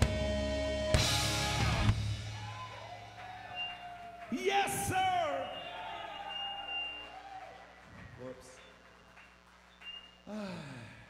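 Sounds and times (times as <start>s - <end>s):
live rock band instruments ringing: 0.0s - 2.4s.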